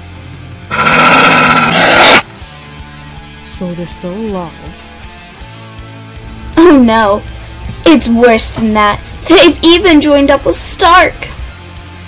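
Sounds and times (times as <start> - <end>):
background music: 0.0 - 12.0
cartoon wolf angry growl: 0.7 - 2.3.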